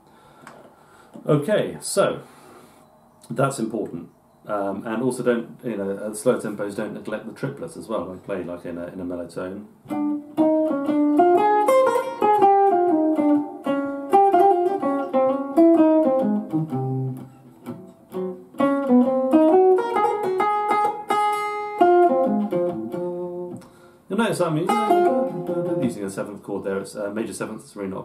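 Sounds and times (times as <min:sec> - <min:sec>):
electric guitar swing solo: 0:09.8 - 0:26.3.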